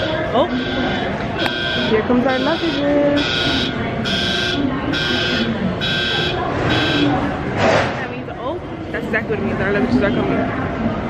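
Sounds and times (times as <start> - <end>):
warning buzzer beeping: 0.0 - 7.3
voices: 0.0 - 11.0.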